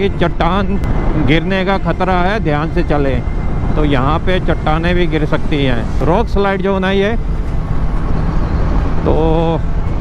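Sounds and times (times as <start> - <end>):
wind and road noise: 0.0 - 10.0.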